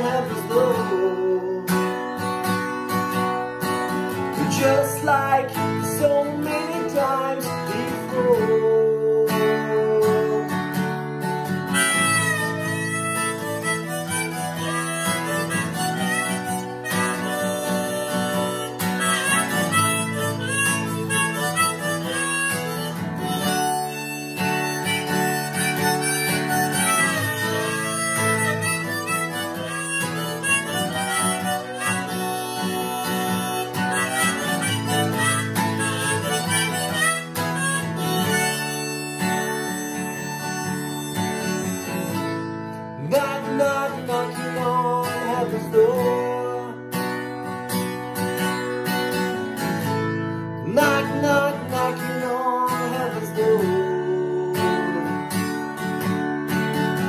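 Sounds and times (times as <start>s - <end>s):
harmonica melody: 0.0s - 57.0s
strummed acoustic guitar: 0.0s - 57.0s.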